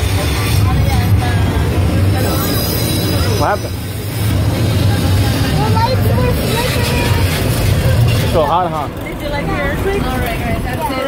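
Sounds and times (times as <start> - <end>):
faint passenger voices: 0.0 - 11.0
tram running low rumble: 0.0 - 11.0.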